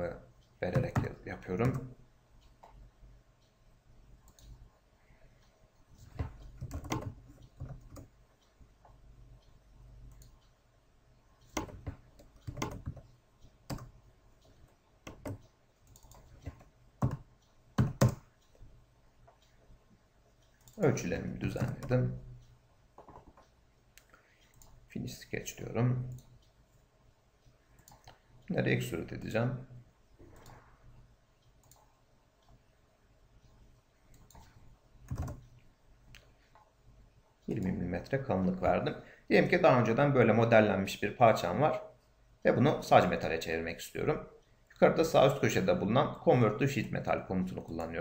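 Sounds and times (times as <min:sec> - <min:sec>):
faint room hum: 0:00.0 - 0:48.0
computer mouse click: 0:06.0 - 0:10.6, 0:11.4 - 0:18.6, 0:27.7 - 0:28.2, 0:30.2 - 0:30.7, 0:31.4 - 0:32.6, 0:34.1 - 0:36.7.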